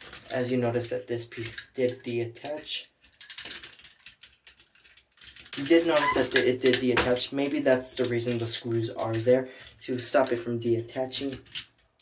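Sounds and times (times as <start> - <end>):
plastic toy parts clicking: 0.0 - 12.0.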